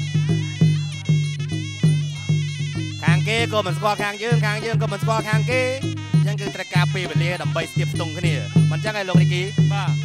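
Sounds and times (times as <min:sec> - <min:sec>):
low drum beats: 0:00.0 - 0:10.0
nasal reed pipe melody: 0:00.0 - 0:10.0.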